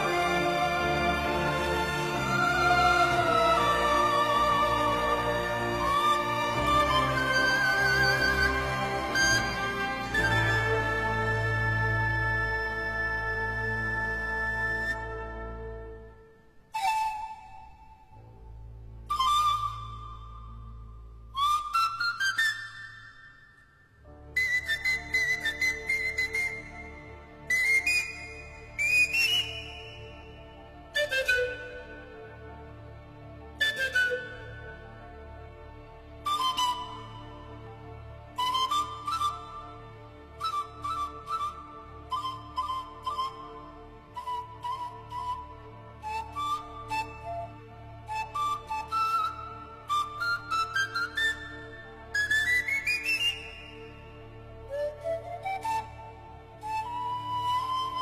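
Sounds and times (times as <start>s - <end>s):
orchestral accompaniment: 0.0s - 16.7s
orchestral strings: 0.0s - 22.9s, 24.0s - 58.0s
pan flute melody: 0.0s - 32.4s, 33.6s - 35.0s, 36.2s - 58.0s.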